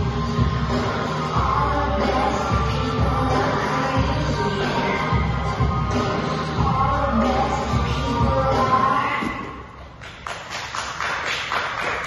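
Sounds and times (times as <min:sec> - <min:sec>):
audience clapping: 0:10.0 - 0:12.0.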